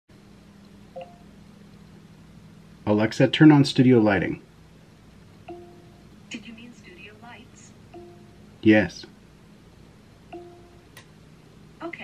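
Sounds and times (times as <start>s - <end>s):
low electrical hum: 0.1s - 12.0s.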